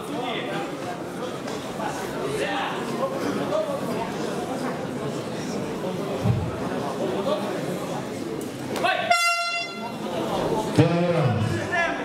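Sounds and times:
crowd chatter: 0.0 - 12.0
horn tone: 9.0 - 10.0.

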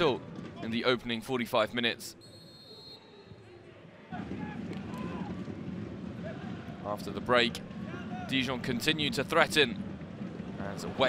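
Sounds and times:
stadium crowd din: 0.0 - 11.0.

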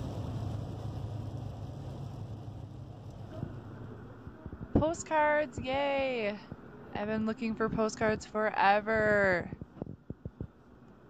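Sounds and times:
van engine and road noise: 0.0 - 5.4.

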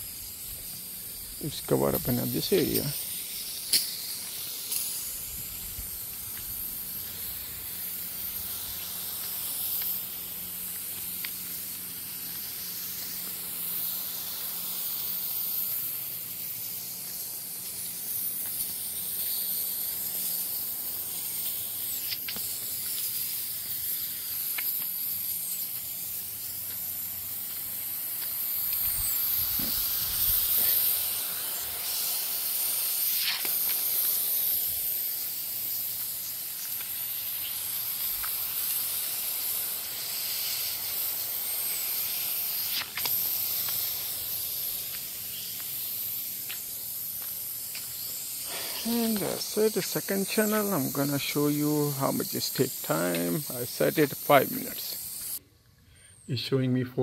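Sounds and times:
lawn sprinklers hissing: 0.0 - 56.6.

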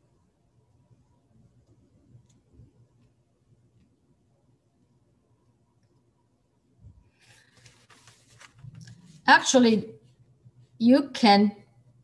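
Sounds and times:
paper rustling and scraping: 7.1 - 9.2.

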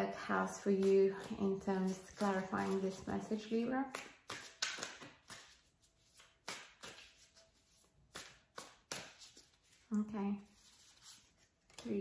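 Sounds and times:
cards shuffling: 0.5 - 12.0.

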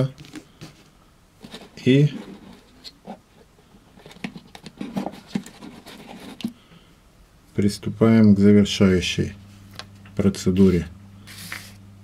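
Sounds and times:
small handling taps and scratches: 1.4 - 6.6.

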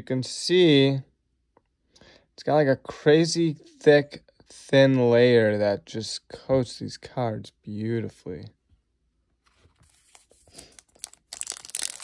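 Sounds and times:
wrapper crinkling and tearing: 9.9 - 12.0.

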